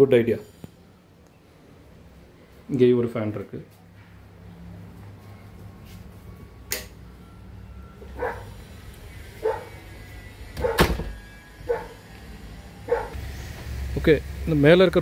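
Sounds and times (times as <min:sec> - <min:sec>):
dog barking: 0:08.2 - 0:08.6, 0:09.4 - 0:09.8, 0:10.6 - 0:10.9, 0:11.7 - 0:12.0, 0:12.9 - 0:13.2.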